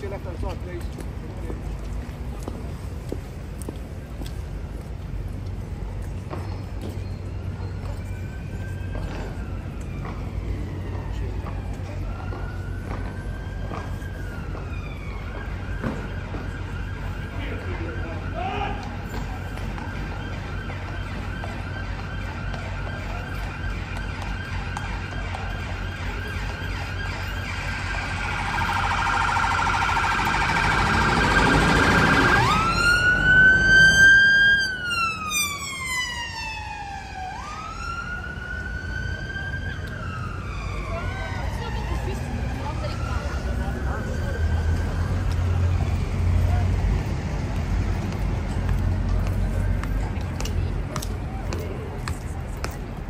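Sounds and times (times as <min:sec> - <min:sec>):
city traffic: 0:00.0 - 0:53.0
crowd chatter: 0:00.0 - 0:53.0
emergency vehicle siren: 0:04.4 - 0:50.8.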